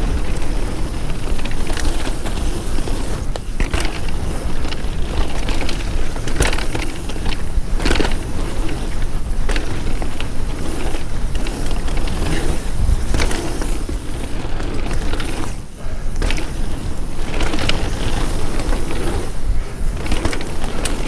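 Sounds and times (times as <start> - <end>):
bike rattling over bumps: 0.0 - 21.0
tyre roar on dirt: 0.0 - 21.0
wind on microphone: 0.0 - 21.0.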